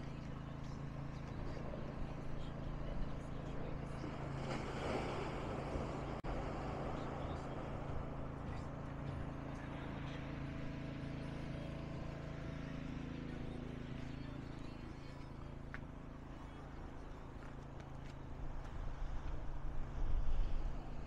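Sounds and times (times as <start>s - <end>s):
low motor hum: 0.0s - 21.0s.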